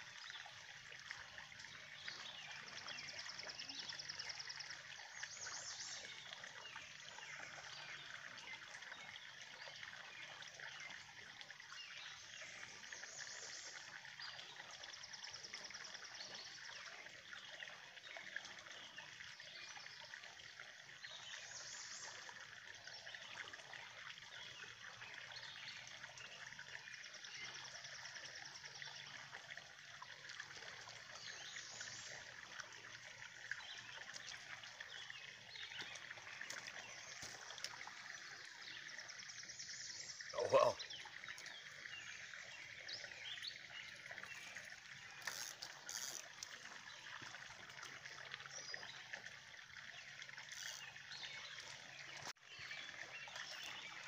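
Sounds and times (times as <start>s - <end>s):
faint trickle of water: 0.0s - 54.0s.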